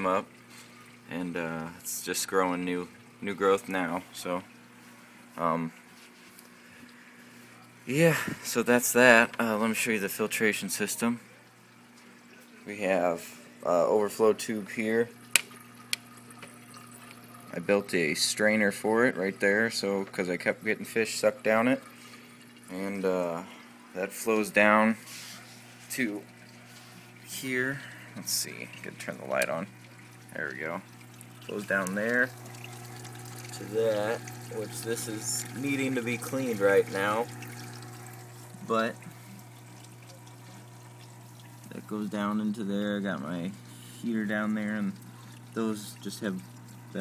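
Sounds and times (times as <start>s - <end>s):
water trickling down a tube: 0.0s - 47.0s
steady low hum: 12.2s - 47.0s.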